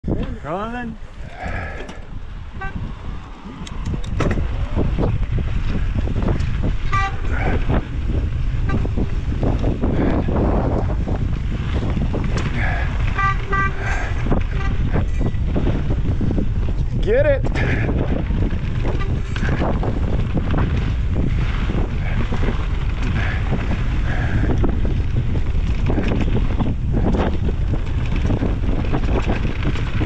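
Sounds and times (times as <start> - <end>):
tyres rumbling on dirt: 0.0 - 30.0
wind buffeting microphone: 0.0 - 30.0.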